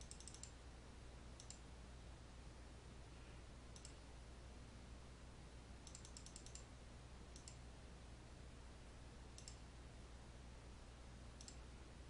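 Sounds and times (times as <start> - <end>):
computer mouse clicks: 0.0 - 0.6, 1.4 - 1.6, 3.7 - 4.0, 5.8 - 6.7, 7.3 - 7.6, 9.3 - 9.7, 11.4 - 11.7
low steady hum: 0.0 - 12.0.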